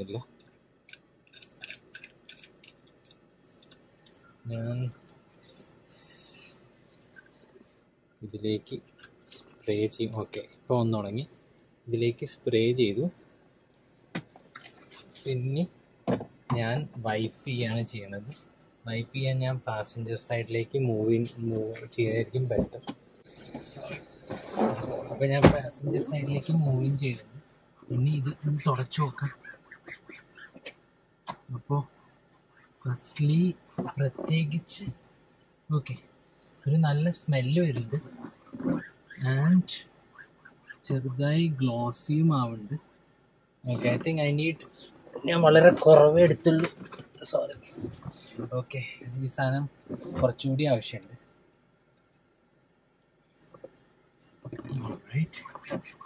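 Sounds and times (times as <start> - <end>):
handling clicks and rustles: 0.3 - 4.2.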